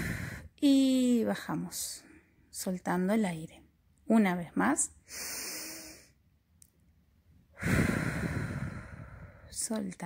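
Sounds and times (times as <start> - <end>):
woman breathing deeply: 0.0 - 0.6, 5.0 - 6.2, 7.5 - 9.6.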